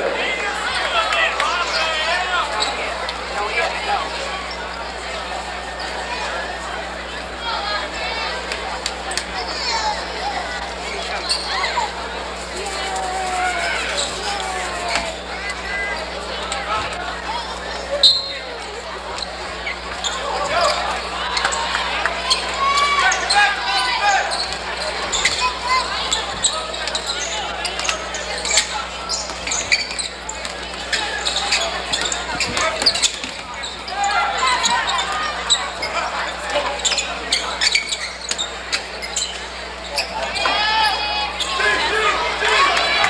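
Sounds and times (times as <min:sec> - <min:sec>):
crowd and player shouts: 0:00.0 - 0:08.6, 0:09.2 - 0:29.3, 0:30.8 - 0:38.1, 0:39.9 - 0:43.0.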